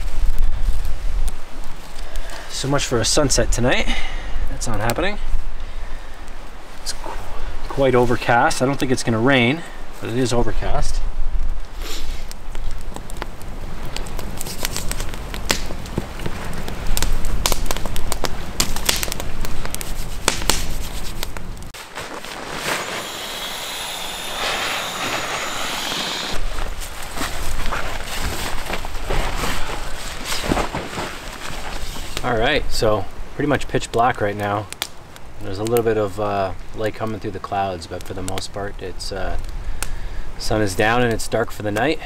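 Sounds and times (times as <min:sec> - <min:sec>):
campfire crackling and popping: 0:00.0 - 0:42.0
steady hiss: 0:00.0 - 0:42.0.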